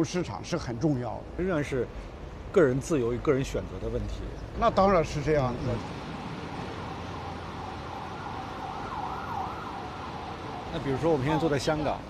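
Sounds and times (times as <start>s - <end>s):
street traffic: 0.0s - 12.0s
emergency siren wailing: 6.1s - 12.0s.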